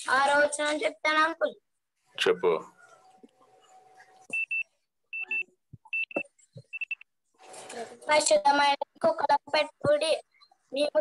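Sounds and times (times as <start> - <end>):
high-pitched electronic double beeps: 4.3 - 7.1.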